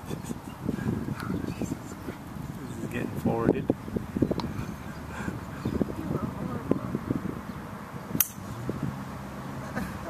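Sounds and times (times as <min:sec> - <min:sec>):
golf driver striking ball: 0:08.2 - 0:08.6.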